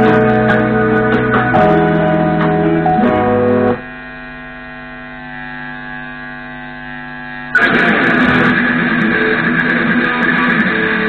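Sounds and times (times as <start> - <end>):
loud guitar strumming: 0.0 - 6.0, 7.5 - 11.0
amplifier mains hum: 0.0 - 11.0.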